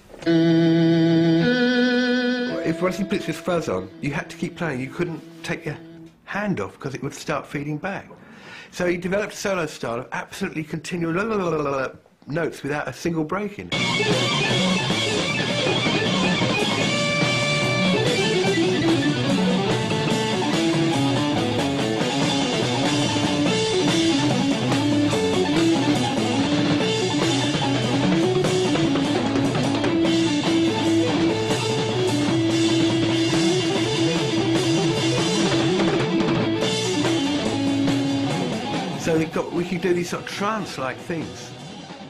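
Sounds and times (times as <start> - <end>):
fuzz organ lead line: 0.2 - 6.3, 13.7 - 42.0
drum kit and cymbals: 13.7 - 42.0.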